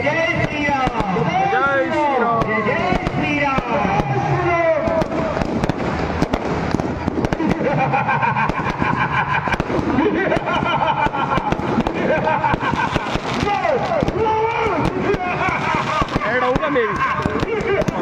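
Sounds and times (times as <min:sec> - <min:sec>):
firecrackers cracking and popping: 0:00.0 - 0:18.0.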